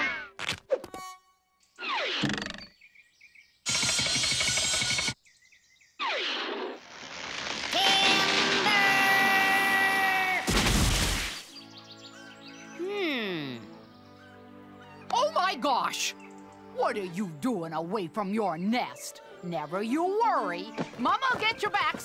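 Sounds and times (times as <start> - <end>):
heavy crash of tree falling: 7.1 - 11.5.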